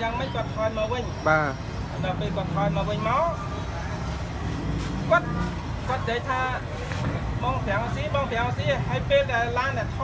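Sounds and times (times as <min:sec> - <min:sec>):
man speaking: 0:00.0 - 0:03.7, 0:04.8 - 0:10.0
low rumble of street noise: 0:00.0 - 0:10.0.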